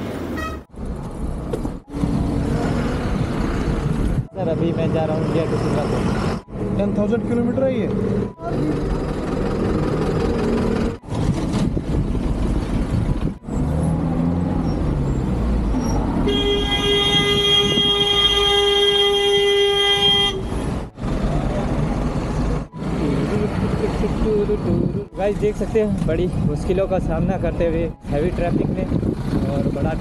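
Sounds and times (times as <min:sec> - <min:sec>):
slow traffic engine and road noise: 0:00.0 - 0:30.0.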